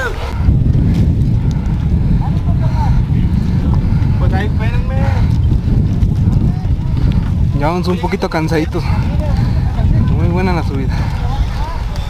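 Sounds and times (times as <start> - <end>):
wind buffeting microphone: 0.0 - 12.0
faint voices: 1.6 - 12.0.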